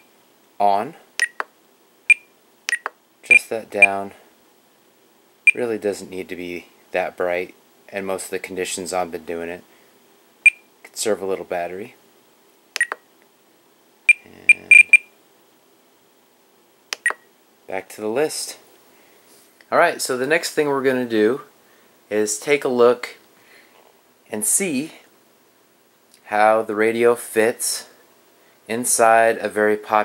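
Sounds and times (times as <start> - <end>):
short high electronic beeps: 14.1 - 15.1.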